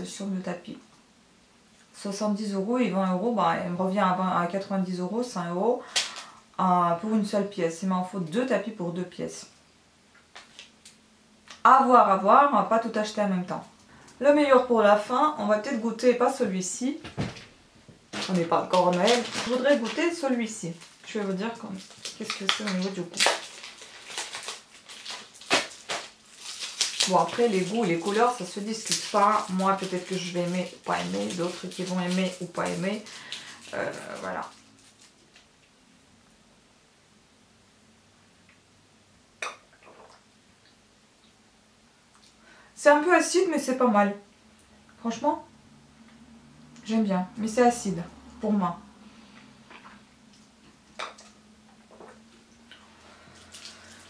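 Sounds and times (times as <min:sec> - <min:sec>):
packaging rustling: 0:17.1 - 0:35.5
sharp packaging clicks: 0:21.8 - 0:27.8.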